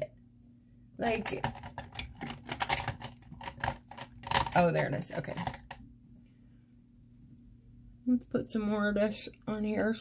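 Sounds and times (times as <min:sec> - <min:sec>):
makeup items clicking and clattering: 0:01.1 - 0:05.8.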